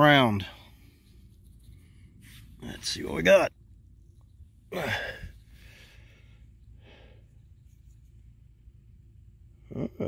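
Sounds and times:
person sighing softly: 4.7 - 5.4.

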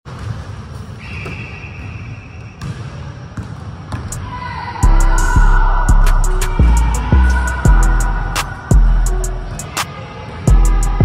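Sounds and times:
music with heavy bass drum: 4.8 - 9.6, 10.5 - 11.0.

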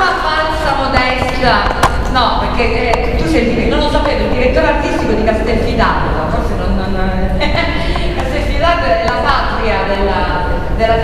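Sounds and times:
woman talking into a microphone: 0.0 - 11.0.

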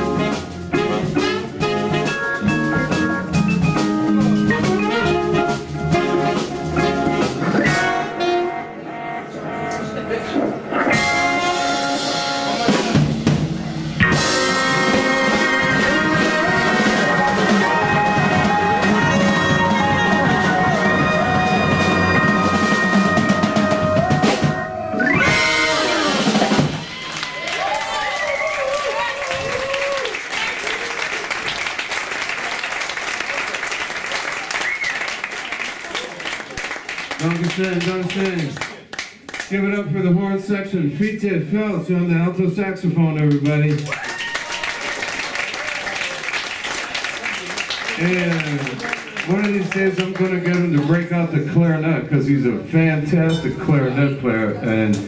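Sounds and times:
organ jazz band playing: 0.0 - 27.4, 47.6 - 54.8
audience applauding and cheering: 14.3 - 24.4, 25.1 - 39.5, 43.4 - 51.1.

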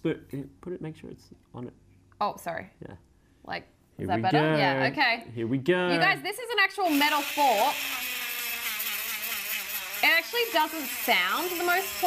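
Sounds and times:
engraving pen grinding metal: 6.9 - 12.0.

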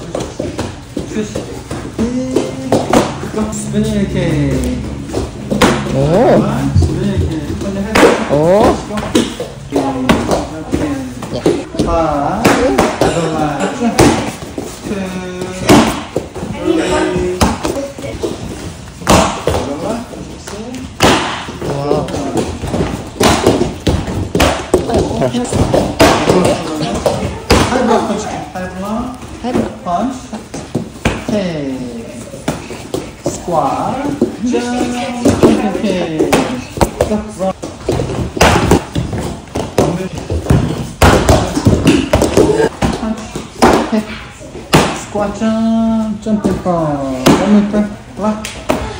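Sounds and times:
kicks slapping a paddle: 37.8 - 44.0.

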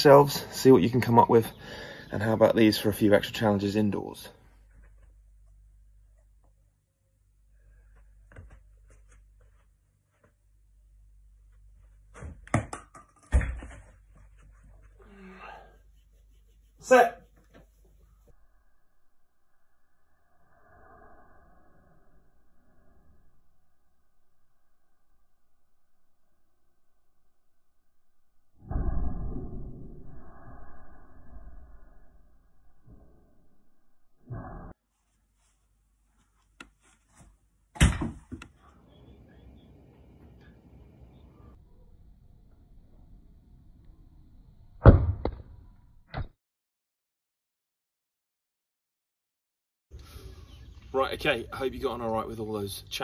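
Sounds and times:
object bouncing: 12.1 - 14.0, 44.8 - 45.6
loud thump: 37.8 - 38.4, 44.8 - 45.5.

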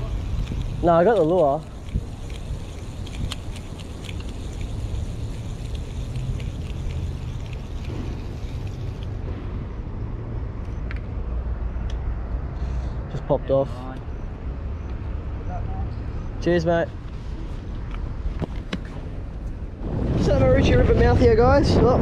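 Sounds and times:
fishing reel ticking: 0.0 - 9.1
low rumble: 19.2 - 22.0.

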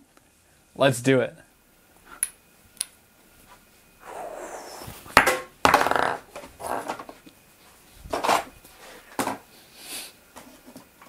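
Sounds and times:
small ball clicking in hand: 2.2 - 3.0.

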